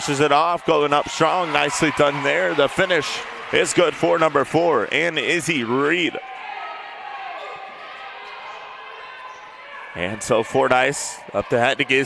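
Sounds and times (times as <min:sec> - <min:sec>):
large hall ambience: 0:00.0 - 0:12.0.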